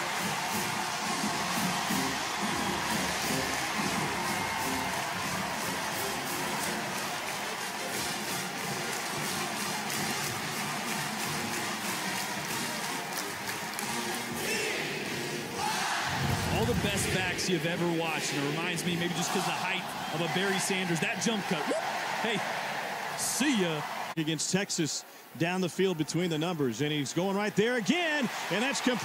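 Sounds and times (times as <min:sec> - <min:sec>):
stadium crowd noise: 0:00.0 - 0:29.0
steady drumbeat: 0:16.1 - 0:18.9.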